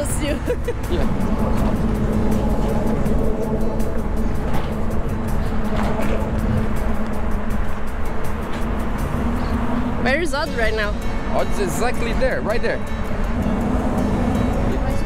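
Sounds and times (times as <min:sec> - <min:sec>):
wind on microphone: 0:00.0 - 0:10.2
faint background music: 0:00.0 - 0:15.0
road traffic rumble: 0:00.0 - 0:15.0.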